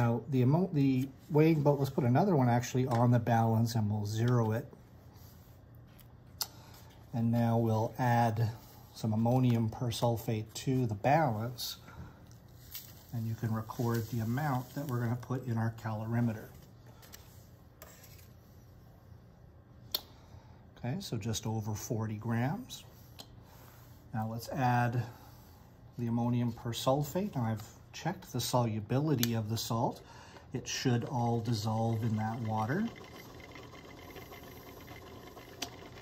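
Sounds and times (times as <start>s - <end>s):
magnetic stirrer running: 31.0s - 36.0s.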